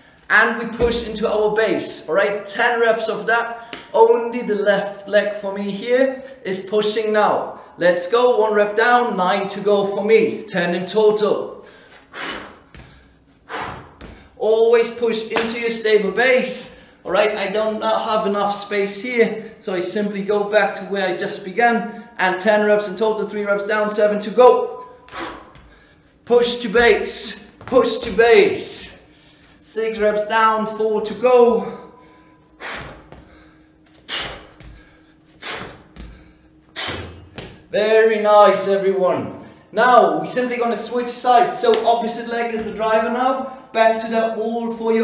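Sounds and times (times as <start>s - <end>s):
man exhaling forcefully: 11.7s - 14.4s, 25.0s - 26.0s, 31.8s - 37.2s.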